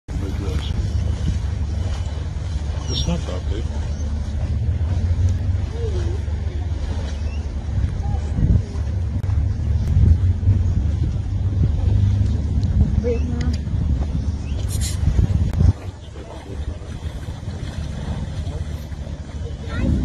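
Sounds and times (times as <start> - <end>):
wind buffeting microphone: 0.1 - 20.0.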